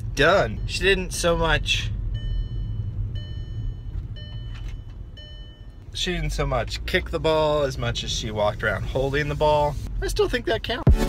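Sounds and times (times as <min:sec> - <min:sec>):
high steady beep tone: 0:00.0 - 0:05.8
car cabin road rumble: 0:00.0 - 0:10.9.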